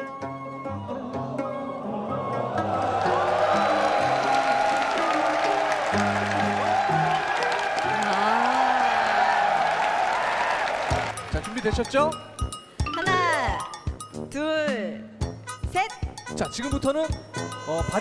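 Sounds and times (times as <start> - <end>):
background music: 0.0 - 18.0
crowd cheering and shouting: 1.6 - 11.5.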